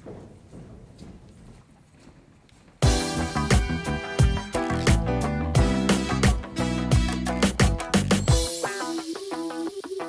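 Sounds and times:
faint footsteps on a stage: 0.0s - 3.3s.

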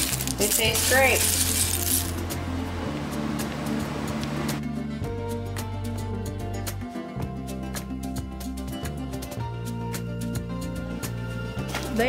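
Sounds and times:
seeds rattling in a bowl: 0.0s - 2.2s
spoon stirring: 0.0s - 2.2s
background music: 0.0s - 12.0s.

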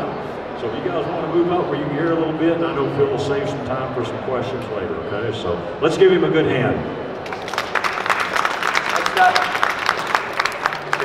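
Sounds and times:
audience applause: 7.2s - 11.0s.

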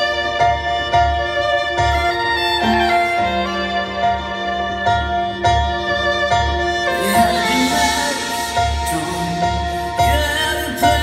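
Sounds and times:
violin gliding melody: 0.0s - 11.0s.

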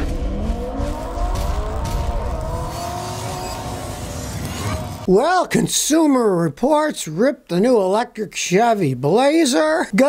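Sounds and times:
car engine revving: 0.0s - 5.1s.

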